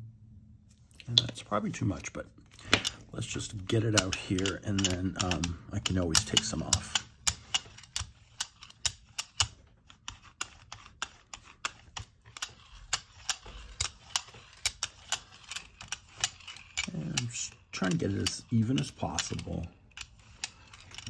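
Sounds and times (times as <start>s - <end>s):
brayer rolling through paint clicking: 1.0s - 21.0s.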